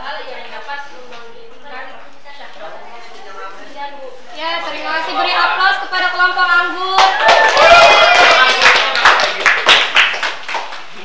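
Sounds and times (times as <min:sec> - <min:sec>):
students clapping: 0:06.9 - 0:11.0.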